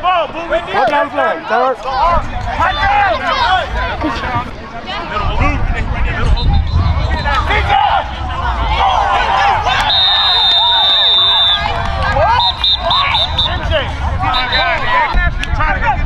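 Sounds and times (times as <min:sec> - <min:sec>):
people shouting: 0:07.2 - 0:15.2
referee's whistle blasts: 0:09.8 - 0:11.7, 0:12.3 - 0:13.7, 0:14.3 - 0:14.8.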